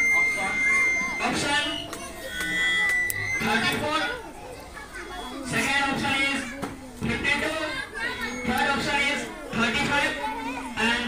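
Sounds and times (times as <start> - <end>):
schoolchildren chattering: 0.0 - 11.0.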